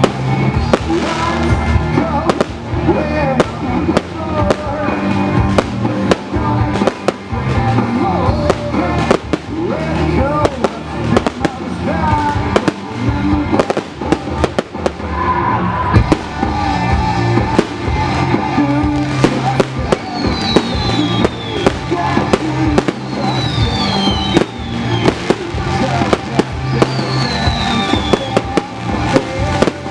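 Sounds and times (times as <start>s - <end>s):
fireworks bursting: 0.0s - 29.9s
song with singer: 0.0s - 29.9s.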